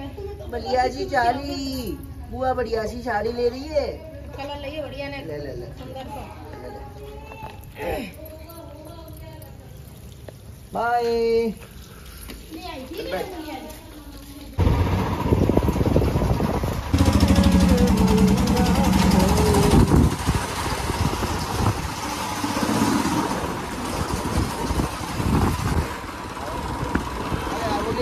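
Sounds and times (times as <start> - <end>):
rushing air: 14.6 - 27.4
motorcycle engine running: 14.6 - 28.0.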